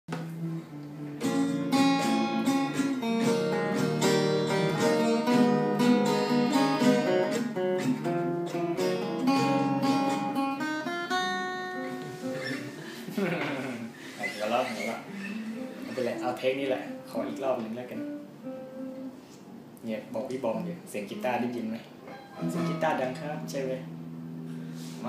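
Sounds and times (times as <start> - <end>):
fingerpicked acoustic guitar: 0.1 - 19.8, 20.5 - 25.0.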